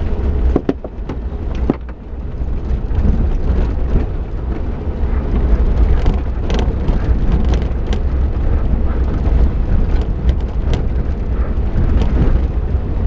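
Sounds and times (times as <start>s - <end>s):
car engine and tyres rumbling: 0.0s - 13.0s
stones ticking and knocking: 0.5s - 2.0s.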